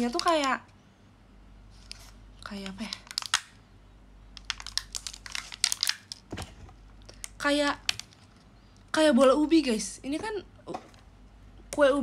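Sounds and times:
plastic container clicks and crackles: 0:02.4 - 0:03.6, 0:04.4 - 0:08.4.

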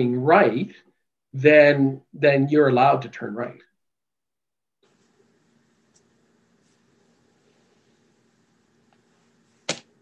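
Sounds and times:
faint steady hum: 0:04.8 - 0:10.0.

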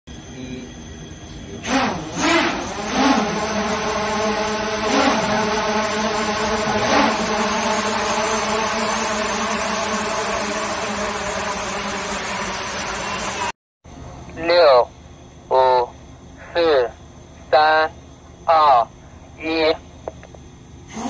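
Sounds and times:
swarm of drones buzzing: 0:00.2 - 0:13.6.

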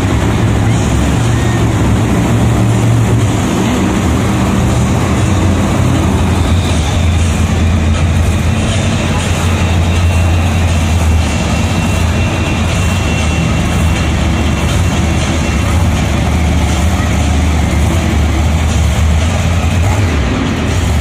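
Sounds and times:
truck engines deep rumble: 0:00.0 - 0:21.0.

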